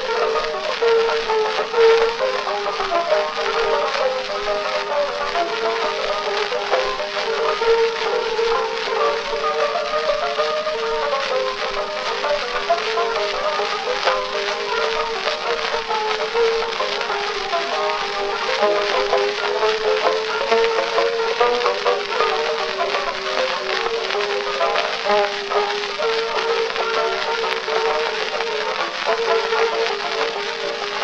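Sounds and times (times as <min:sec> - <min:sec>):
surface hiss and crackle: 0:00.0 - 0:31.0.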